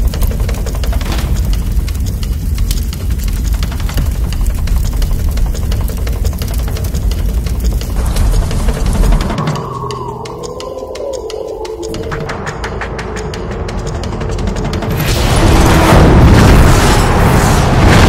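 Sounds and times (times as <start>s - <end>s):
fire crackling and popping: 0.0s - 12.9s
steady low rumble: 0.0s - 18.0s.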